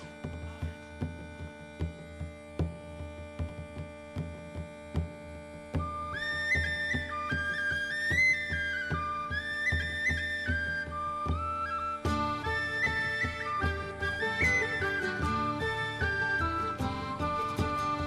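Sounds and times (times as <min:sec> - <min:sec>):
flute melody with slides: 0:05.7 - 0:18.0.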